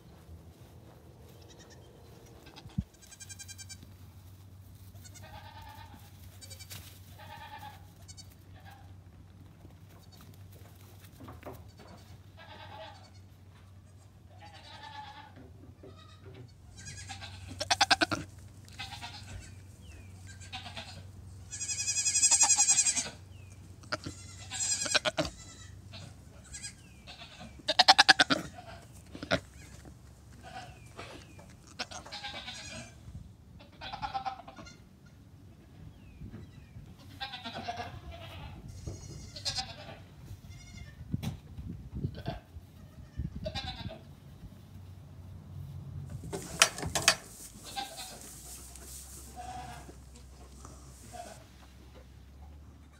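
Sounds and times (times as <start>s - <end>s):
goat kids bleating: 1.3s - 4.1s, 4.9s - 9.0s, 11.5s - 33.0s, 33.6s - 35.2s, 36.4s - 41.1s, 42.1s - 44.1s, 46.4s - 52.0s.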